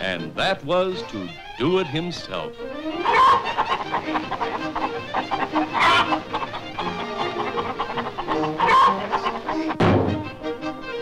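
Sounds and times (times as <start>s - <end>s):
cartoon hens squawking and clucking: 0.0s - 11.0s
orchestral music: 0.0s - 11.0s.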